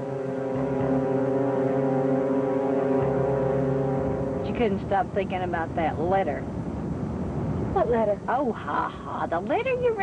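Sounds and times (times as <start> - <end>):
low sustained synthesizer chord: 0.0 - 7.7.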